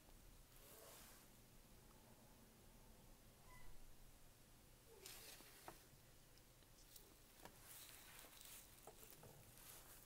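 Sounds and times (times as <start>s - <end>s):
paper rustling: 5.0s - 6.0s, 6.8s - 10.0s.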